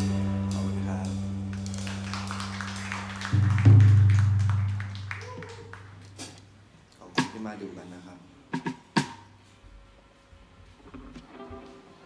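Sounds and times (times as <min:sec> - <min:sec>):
electric bass low notes: 0:00.0 - 0:05.0.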